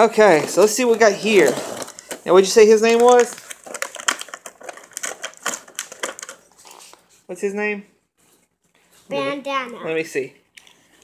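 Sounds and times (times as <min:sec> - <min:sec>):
plastic blister tray crackling: 0:00.0 - 0:06.7.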